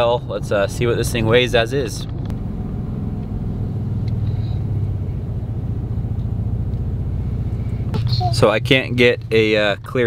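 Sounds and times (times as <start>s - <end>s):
truck engine low rumble: 0.0s - 10.0s.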